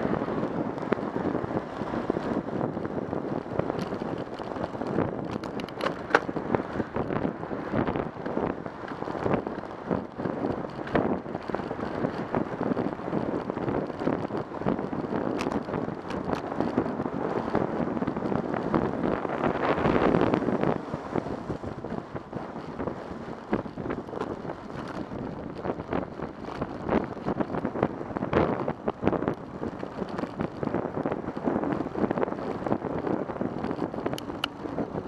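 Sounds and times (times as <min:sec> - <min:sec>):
freeway traffic: 0:00.0 - 0:35.0
wind rushing over microphone: 0:00.0 - 0:35.0.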